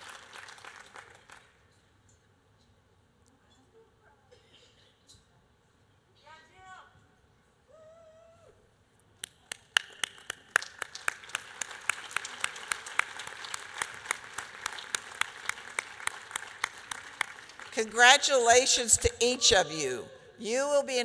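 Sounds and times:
audience applause: 0.0 - 1.4, 9.8 - 17.8.

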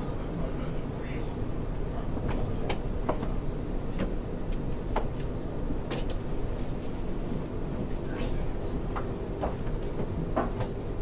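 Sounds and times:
train rumbling: 0.0 - 11.0
train clicks and rattles: 2.1 - 11.0.

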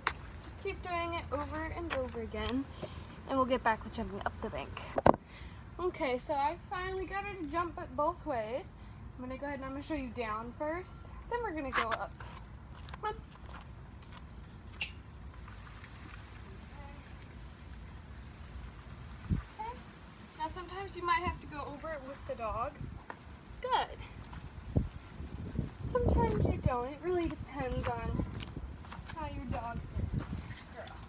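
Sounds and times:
outdoor background noise: 0.0 - 31.0.

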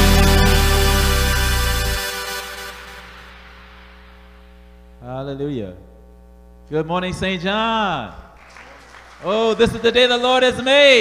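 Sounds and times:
electrical mains hum: 3.1 - 10.5.

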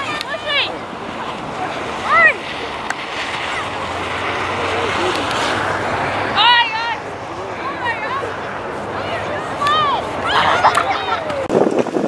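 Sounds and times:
children shouting and squealing: 0.0 - 4.9, 9.0 - 11.5.

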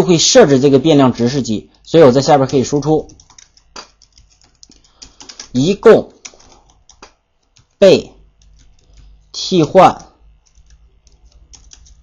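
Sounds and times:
keyboard keystroke clicks: 2.5 - 5.5, 8.4 - 12.0.

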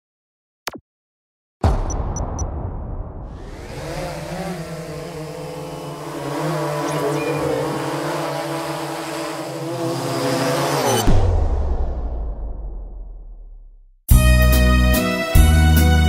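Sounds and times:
drone propellers humming: 3.3 - 11.1.

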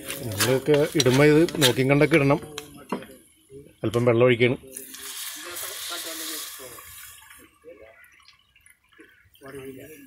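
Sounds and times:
water sizzling in hot pot: 0.0 - 9.2.

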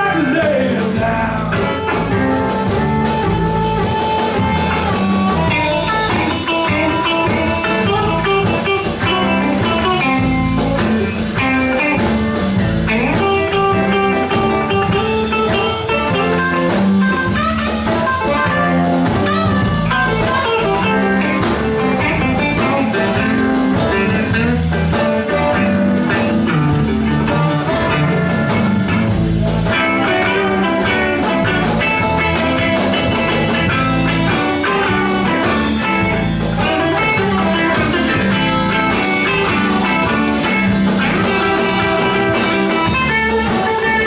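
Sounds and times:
blues band playing: 0.0 - 44.0
harmonica: 1.0 - 10.1, 13.3 - 23.9, 29.8 - 44.0.

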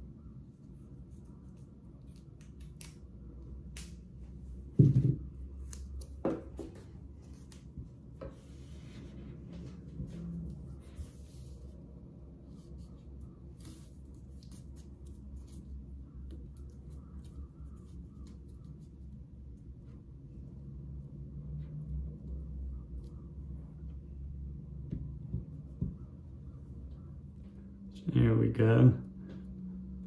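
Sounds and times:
steady low hum: 0.0 - 30.0
tape rustling and clicking: 1.3 - 4.2, 5.4 - 8.2.

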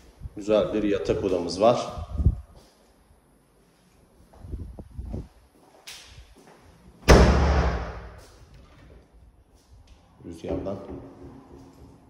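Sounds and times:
door slamming shut: 7.1 - 8.2.

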